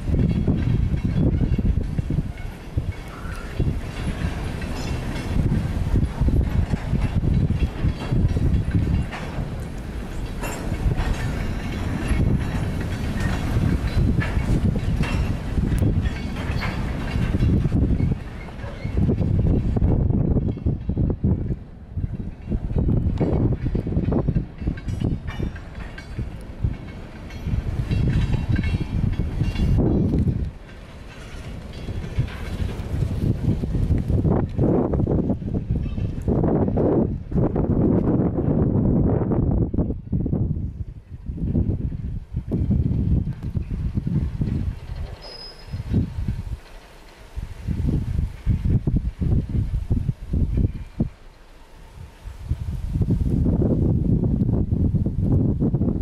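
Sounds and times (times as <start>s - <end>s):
freight train rolling past: 0.0s - 56.0s
wind buffeting microphone: 0.0s - 56.0s.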